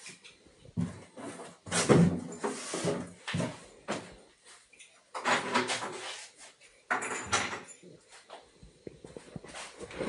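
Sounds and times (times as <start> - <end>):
items rustling and knocking: 0.0 - 10.0.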